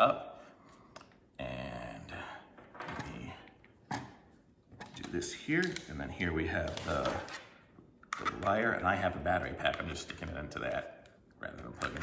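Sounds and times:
plastic clicks: 4.8 - 5.9.

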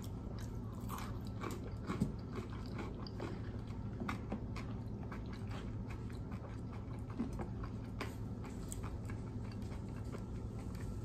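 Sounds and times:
crispy food chewing crunches: 0.0 - 11.0.

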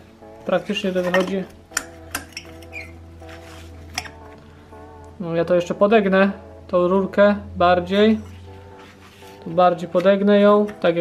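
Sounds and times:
quiet music with sustained notes: 0.0 - 11.0.

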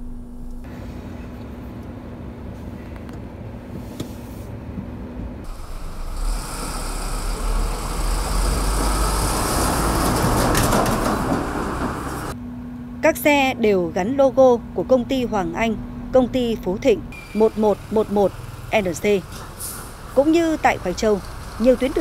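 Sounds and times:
distant truck road noise: 0.0 - 22.0
dump truck driving past: 5.4 - 12.4, 15.8 - 22.0.

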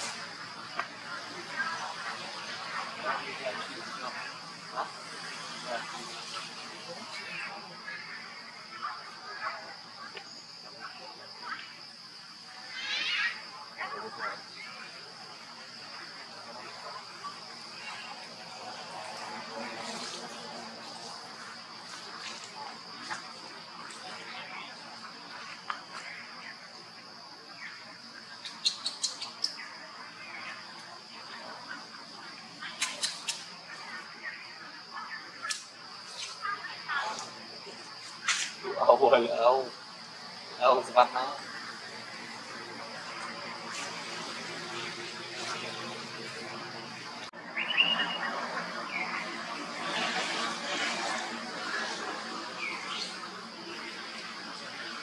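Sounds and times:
high-pitched insect drone: 0.0 - 55.0
short chirping calls: 28.4 - 29.7, 47.5 - 49.1.

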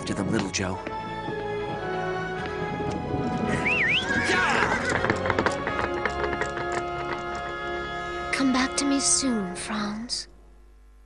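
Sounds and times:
hooves clip-clopping: 0.0 - 8.4
background music: 0.0 - 10.4
cartoon horse whinnying: 3.5 - 5.6.

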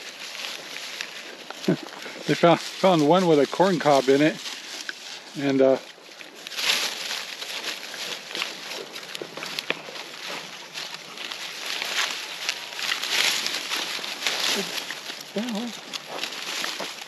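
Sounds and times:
dry leaves crackling and snapping: 0.0 - 17.0
pigs chewing dry corn husks: 0.0 - 17.0.

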